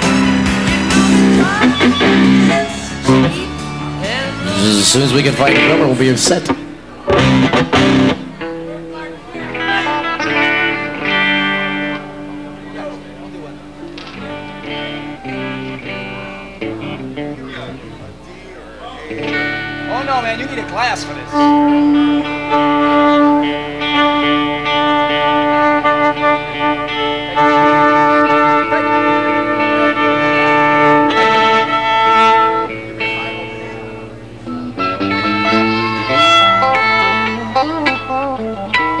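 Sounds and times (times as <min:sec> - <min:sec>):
electric guitar: 0:00.0 - 0:39.0
fiddle playing held notes: 0:09.4 - 0:12.6, 0:19.2 - 0:39.0.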